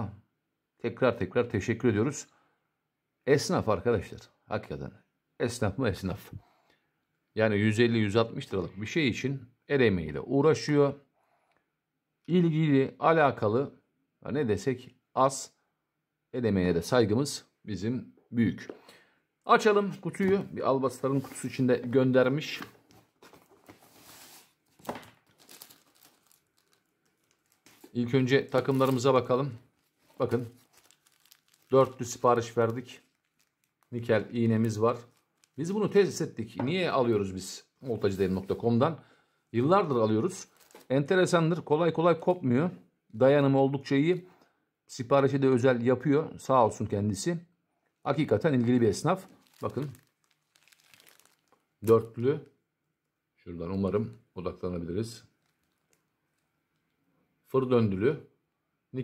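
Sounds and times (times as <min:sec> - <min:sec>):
cardboard and plastic bags rustling: 0:20.1 - 0:37.3, 0:40.4 - 0:41.0, 0:48.6 - 0:51.6, 0:55.4 - 0:56.1.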